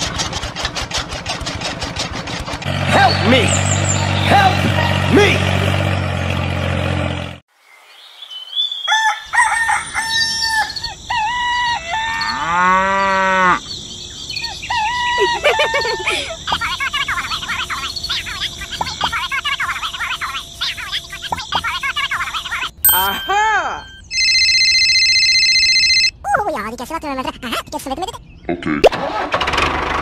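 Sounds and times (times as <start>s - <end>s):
steady engine: 0.0s - 7.4s.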